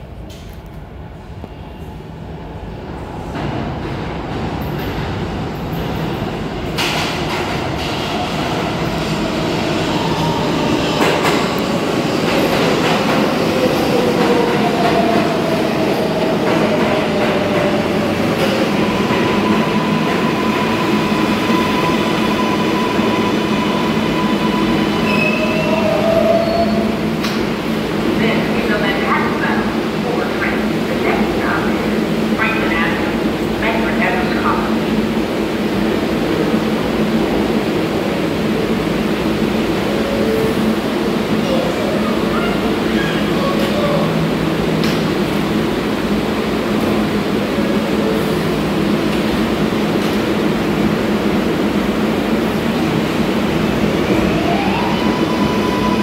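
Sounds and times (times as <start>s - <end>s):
subway train arriving: 0.0s - 56.0s.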